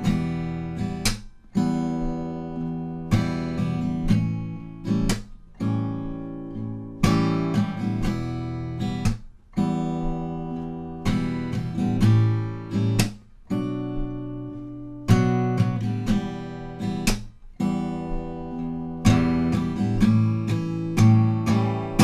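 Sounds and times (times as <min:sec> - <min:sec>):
acoustic guitar strumming: 0:00.0 - 0:22.0
smack on guitar strings: 0:00.0 - 0:22.0.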